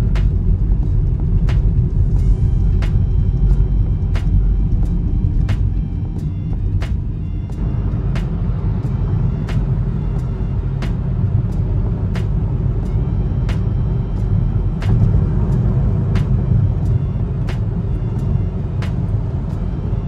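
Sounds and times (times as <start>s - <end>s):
road and engine rumble in car: 0.0s - 20.0s.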